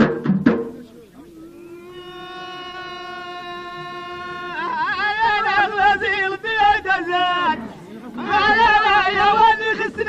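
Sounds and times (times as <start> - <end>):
drumming: 0.0 - 0.9
man singing long note: 1.3 - 7.7.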